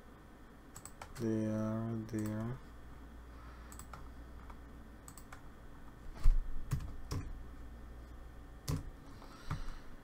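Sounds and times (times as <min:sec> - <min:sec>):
computer mouse clicks: 0:00.8 - 0:01.3, 0:03.7 - 0:05.4
keyboard clicks: 0:00.8 - 0:01.3, 0:02.1 - 0:02.6, 0:03.7 - 0:05.4, 0:08.6 - 0:08.9.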